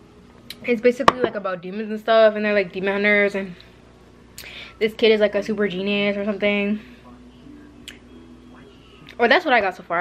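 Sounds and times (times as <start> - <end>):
faint television audio: 0.5 - 10.0.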